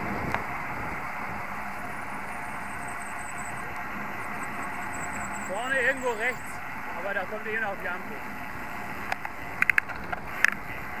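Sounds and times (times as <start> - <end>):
wind and road noise: 0.0 - 11.0
bike sharp clicks: 9.0 - 10.7.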